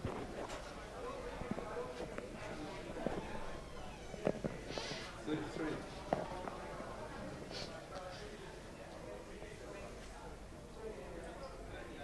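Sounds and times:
faint murmur: 0.0s - 12.0s.

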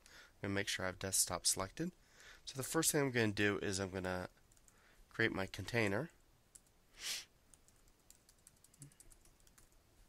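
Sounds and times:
brief hiss: 7.0s - 7.3s
typing on computer keyboard: 7.5s - 9.8s.

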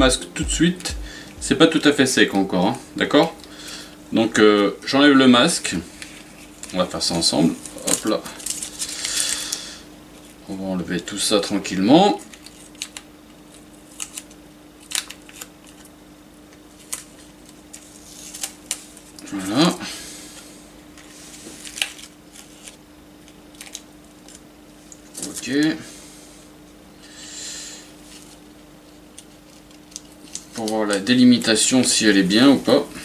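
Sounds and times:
masking tape peeling and crinkling: 12.2s - 15.9s, 16.7s - 19.2s, 21.4s - 25.6s, 28.1s - 31.6s.

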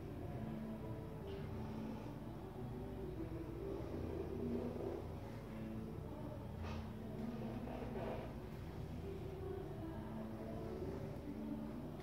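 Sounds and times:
faint humming tones: 0.0s - 12.0s
low background rumble: 0.0s - 12.0s.

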